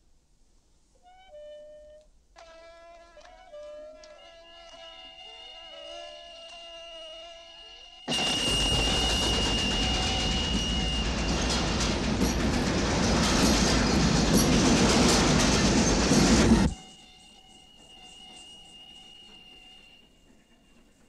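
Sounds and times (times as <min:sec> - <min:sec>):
train passing with clattering wheels: 0:08.1 - 0:21.0.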